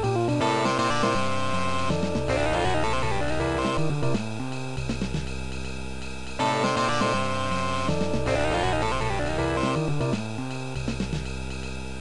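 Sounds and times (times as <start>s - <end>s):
bass line: 0.0s - 12.0s
synthesized saxophone: 0.4s - 4.2s, 6.4s - 10.2s
ride cymbal: 4.2s - 6.4s.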